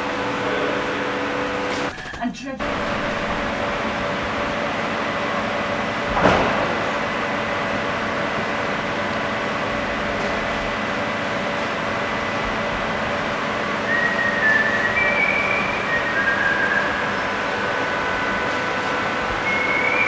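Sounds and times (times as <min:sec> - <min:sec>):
workshop hum and hiss: 0:00.0 - 0:20.0.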